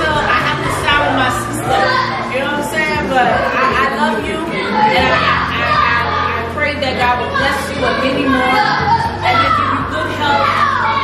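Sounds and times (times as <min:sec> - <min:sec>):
woman talking: 0:00.0 - 0:10.9
background chatter: 0:00.0 - 0:11.0.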